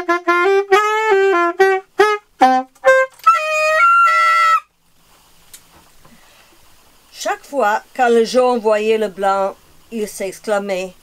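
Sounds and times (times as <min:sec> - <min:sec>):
saxophone holding high note: 0:00.0 - 0:04.7.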